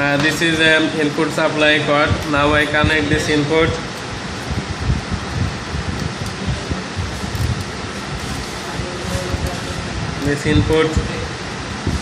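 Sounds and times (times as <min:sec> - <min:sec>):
fan rushing noise: 0:00.0 - 0:12.0.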